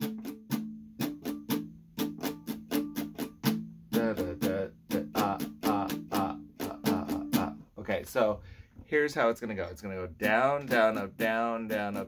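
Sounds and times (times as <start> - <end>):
acoustic guitar strumming: 0.0 - 7.8, 10.2 - 12.0
person singing: 3.9 - 7.7, 10.2 - 12.0.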